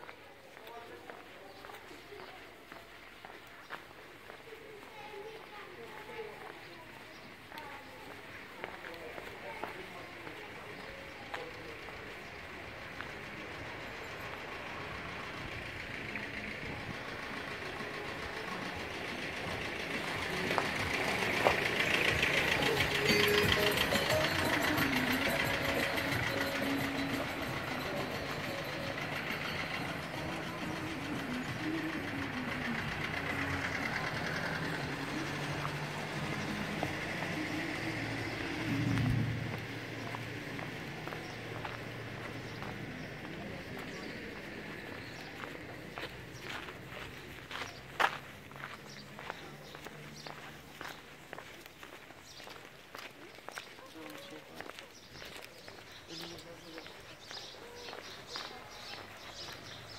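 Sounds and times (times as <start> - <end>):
faint voices: 0.0 - 59.9.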